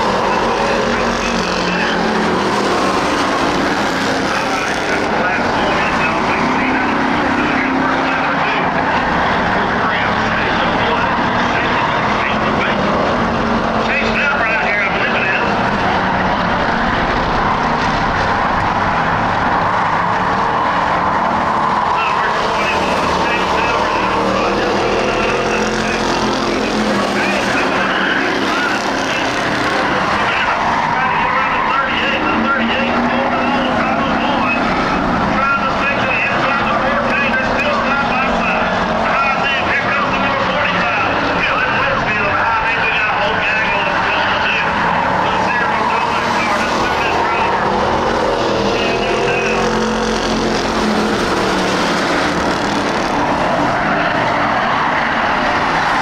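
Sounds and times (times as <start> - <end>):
race car engines: 0.0 - 56.0.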